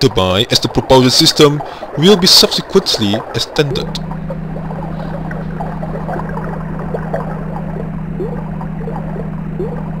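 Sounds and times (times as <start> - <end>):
steady low hum: 0.0 - 10.0
water bubbling and gurgling: 0.0 - 10.0.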